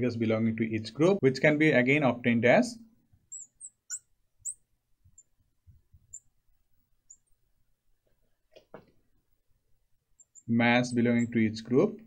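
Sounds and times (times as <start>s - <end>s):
marker squeaking on glass: 3.3s - 6.4s, 7.0s - 7.4s, 10.2s - 11.4s.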